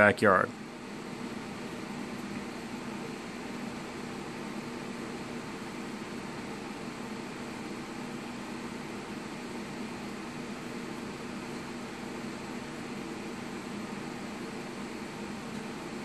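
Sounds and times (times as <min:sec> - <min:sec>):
fan-like hum with hiss: 0:00.0 - 0:16.0.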